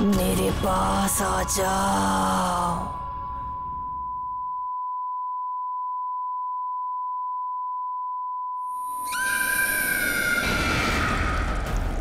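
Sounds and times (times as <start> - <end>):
hiss and shrill screech: 8.8 - 11.9.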